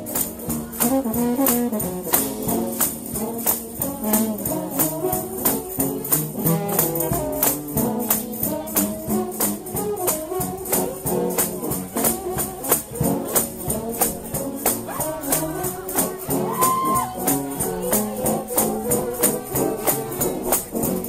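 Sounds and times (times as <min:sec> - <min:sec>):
brass band playing: 0:00.0 - 0:21.0
tambourine beat: 0:00.0 - 0:21.0.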